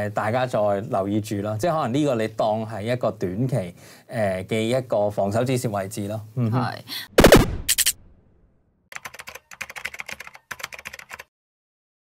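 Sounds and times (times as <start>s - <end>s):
keyboard typing: 8.9s - 11.3s.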